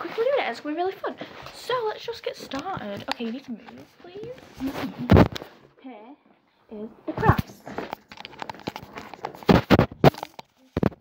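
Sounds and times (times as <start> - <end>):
phone handling bumps and rubs: 3.7 - 5.6, 7.2 - 11.0.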